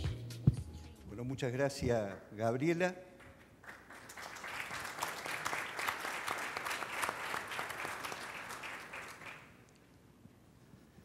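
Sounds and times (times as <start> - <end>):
audience applauding: 3.2 - 9.6.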